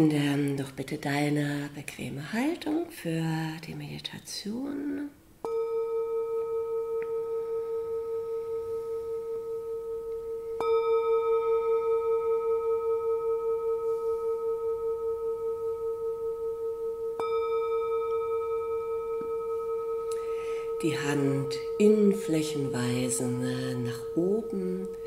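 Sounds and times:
singing bowl ringing: 5.2 - 25.0.

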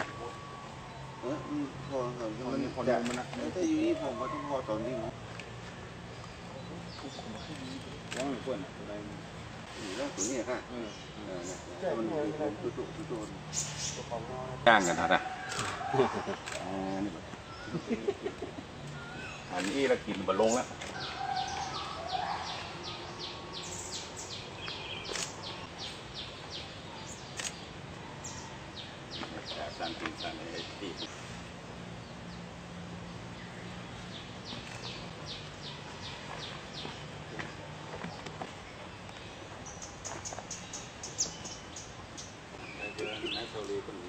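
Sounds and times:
birds chirping: 0.0 - 44.0
outdoor background noise: 0.0 - 44.0.

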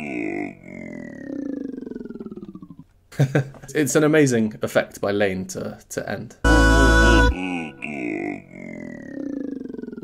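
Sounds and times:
voice imitating machine powering down: 6.5 - 10.0.

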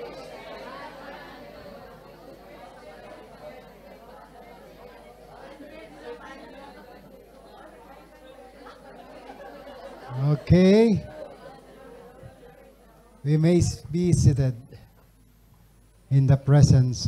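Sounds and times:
babble of overlapping voices: 0.0 - 17.0.

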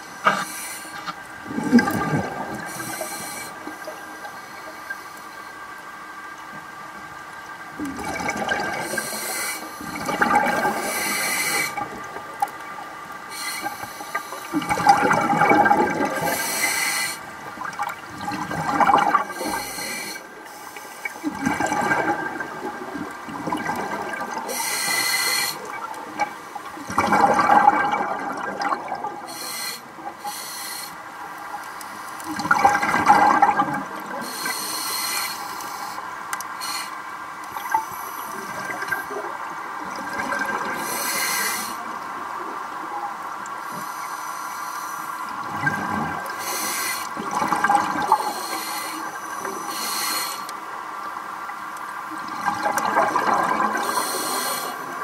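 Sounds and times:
exhaled bubbles underwater: 0.0 - 4.7, 7.4 - 20.5, 21.1 - 30.2, 31.6 - 34.8, 37.5 - 43.9, 45.2 - 49.8, 51.4 - 55.0
faint steady hum: 0.0 - 55.0.

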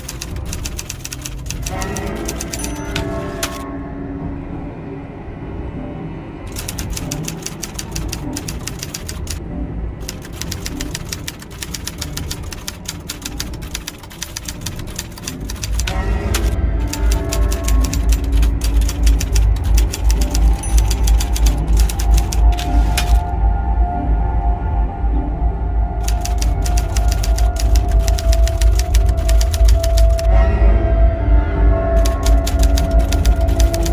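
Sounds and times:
typewriter key clicks: 0.0 - 3.6, 6.5 - 9.4, 10.0 - 23.3, 26.0 - 30.3, 32.0 - 33.9.

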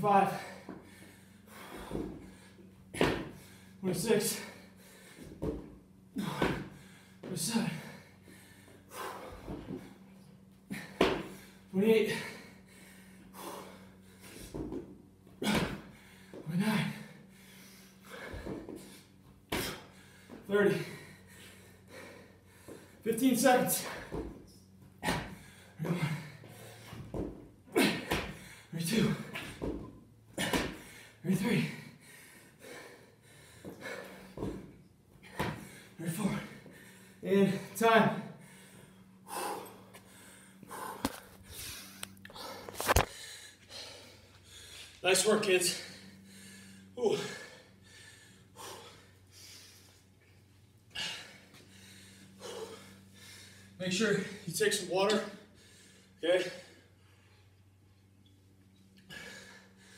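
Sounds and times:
steady low hum: 0.0 - 59.9
person breathing hard: 0.2 - 14.8, 15.4 - 29.8, 30.4 - 45.0, 45.6 - 54.6, 55.2 - 57.6, 59.0 - 59.9
hands and feet thudding on rubber mat: 1.6 - 3.4, 5.2 - 7.6, 33.6 - 36.5.

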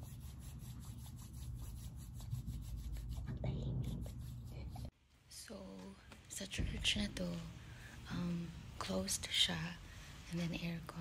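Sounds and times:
palms rubbing together: 0.0 - 4.9.

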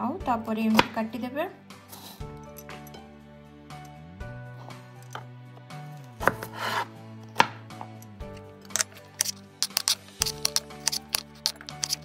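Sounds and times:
knife slicing scrape: 6.0 - 12.0.

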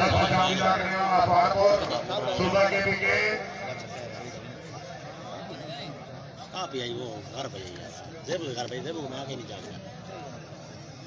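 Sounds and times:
man speaking: 0.0 - 4.5
crowd voices: 0.0 - 11.0.

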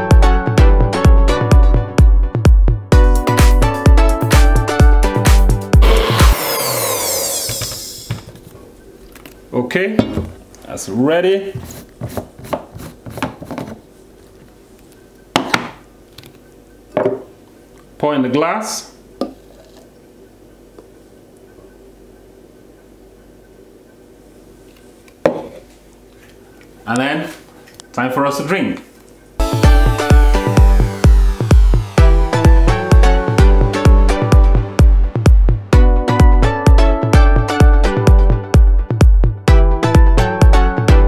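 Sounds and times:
electronic background music: 0.0 - 8.1, 29.4 - 41.0
blender motor spinning down: 5.8 - 8.3, 29.4 - 33.4
faint room hum: 8.1 - 29.4.

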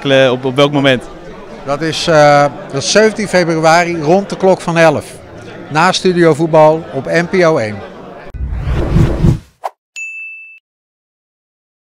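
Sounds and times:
low whoosh: 8.4 - 9.5
bright ding: 10.0 - 10.6.

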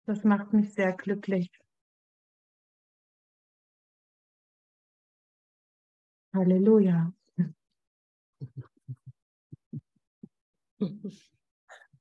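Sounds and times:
soft quiet laughter: 8.4 - 9.1, 10.8 - 12.0.

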